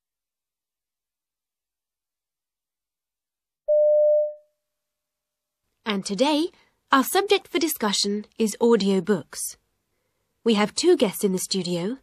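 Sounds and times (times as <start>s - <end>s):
steady electronic beep: 3.7s - 4.4s.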